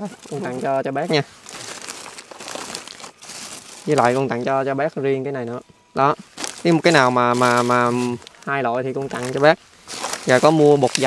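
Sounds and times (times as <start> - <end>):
plastic bag crinkling: 0.0 - 4.6, 6.1 - 11.0.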